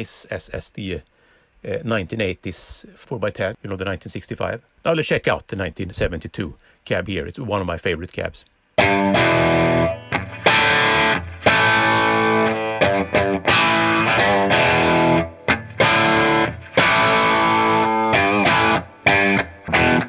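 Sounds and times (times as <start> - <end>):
distorted electric guitar riffs: 8.8 - 20.0.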